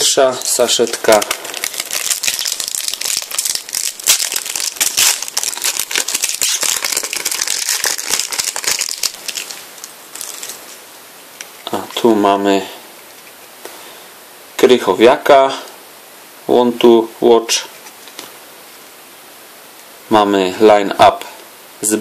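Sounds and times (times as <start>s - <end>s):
foil sachet crinkling and tearing: 0.0s - 10.7s.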